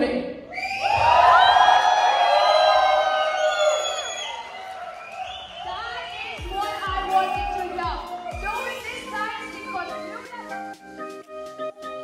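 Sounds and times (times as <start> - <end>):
audience cheering and whooping: 0.5 - 8.7.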